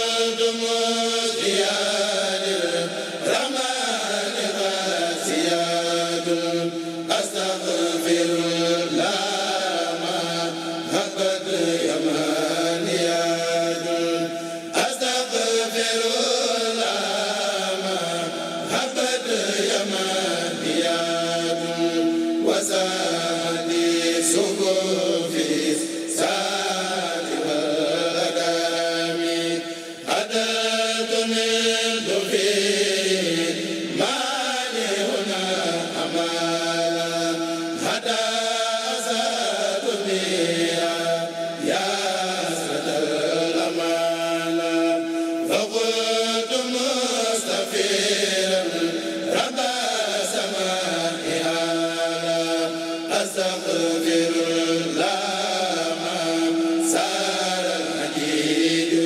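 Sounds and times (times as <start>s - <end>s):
men chanting in unison: 0.0s - 59.0s.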